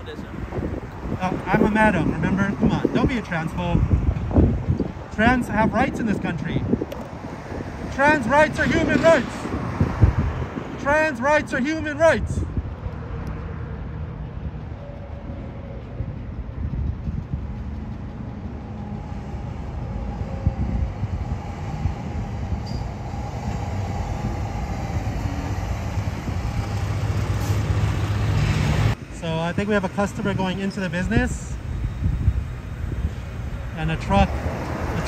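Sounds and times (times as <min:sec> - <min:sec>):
vehicle engine rumbling: 0:00.0 - 0:35.0.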